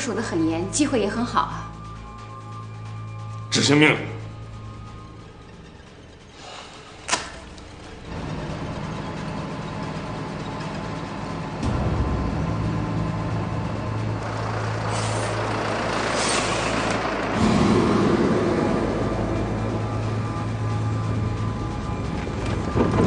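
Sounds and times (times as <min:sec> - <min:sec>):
road noise: 0:00.0 - 0:23.0
truck engine drone: 0:00.0 - 0:23.0.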